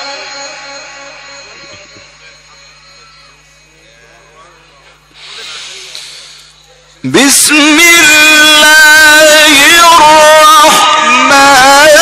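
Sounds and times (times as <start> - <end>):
faint murmur of gathering: 0.0 - 7.3
breathy hiss into microphone: 5.1 - 6.6.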